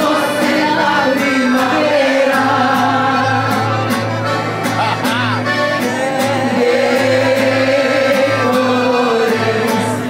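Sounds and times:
woman singing: 0.0s - 3.7s, 5.8s - 10.0s
accordion playing: 0.0s - 10.0s
guitar and bass: 0.0s - 10.0s.

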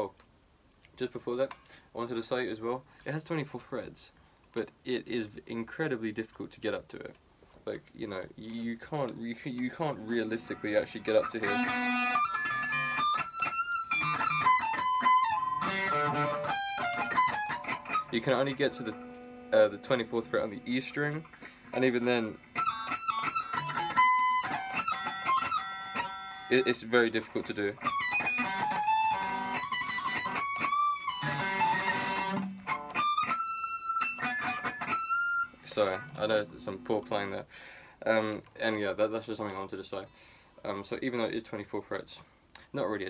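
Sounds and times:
electric guitar high single notes: 10.0s - 26.8s, 27.7s - 37.3s.

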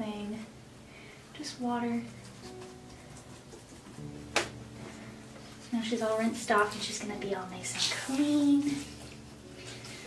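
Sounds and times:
wiping wet doll with washcloth: 6.6s - 10.0s.

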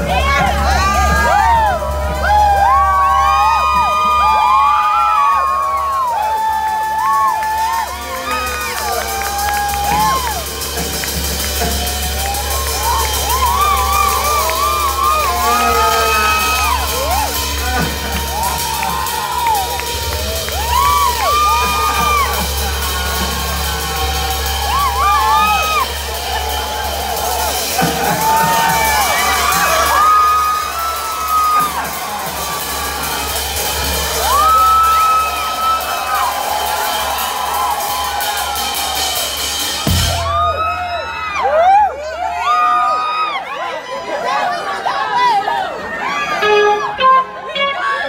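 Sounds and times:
crowd cheering and whooping: 0.0s - 48.0s.

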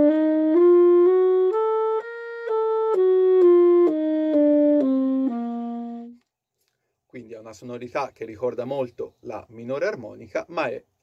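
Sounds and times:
tenor saxophone playing a scale: 0.0s - 6.2s.

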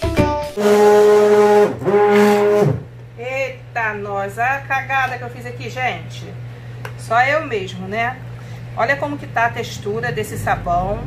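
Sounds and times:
immersion blender motor hum: 0.6s - 2.9s.

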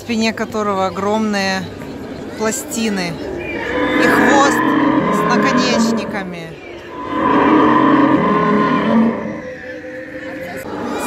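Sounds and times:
low moo-like dinosaur call: 3.4s - 11.0s.

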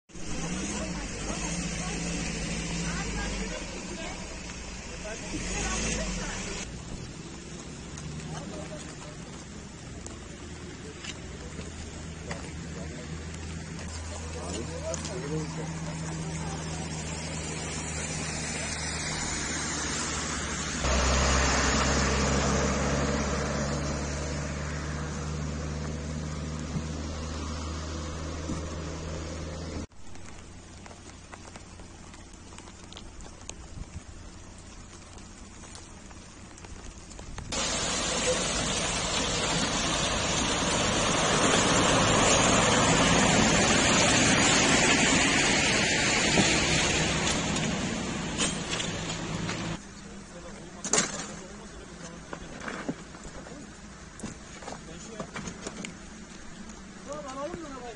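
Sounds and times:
engine hum: 0.1s - 57.9s
tyres hissing on wet road: 0.1s - 57.9s.

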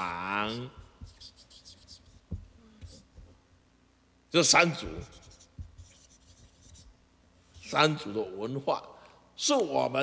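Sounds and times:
marker scratching on paper: 0.8s - 3.4s, 4.8s - 7.8s.

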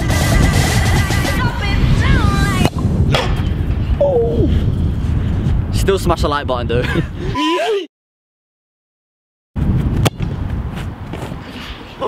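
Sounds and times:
wind rumbling on microphone: 0.0s - 7.4s, 9.6s - 12.0s.

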